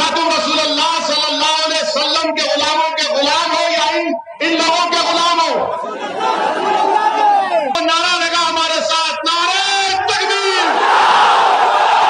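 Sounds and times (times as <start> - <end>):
man speaking through microphones: 0.0 - 5.8, 7.2 - 10.8
crowd chatter: 4.2 - 7.8.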